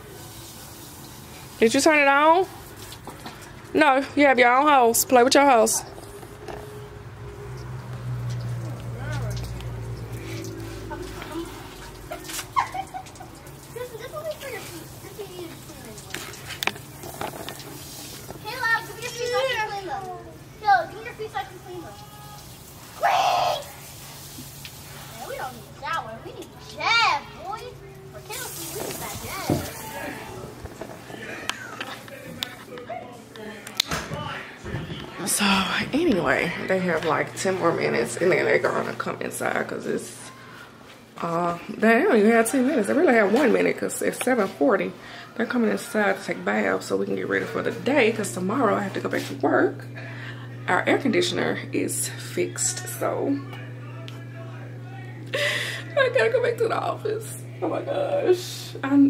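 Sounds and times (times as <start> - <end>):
children calling and shouting: 5.6 - 43.8, 44.4 - 50.8
steady low hum: 46.7 - 59.0.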